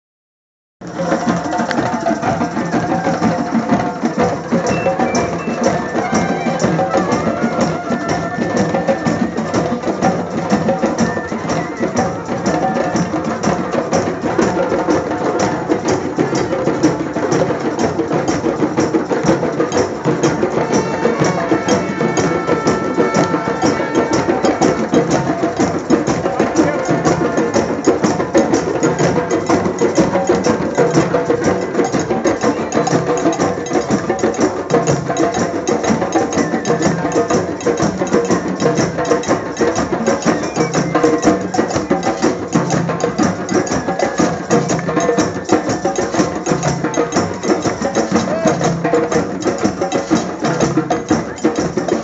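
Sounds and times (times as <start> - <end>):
hand drums playing fast rhythm: 0.8 - 52.0.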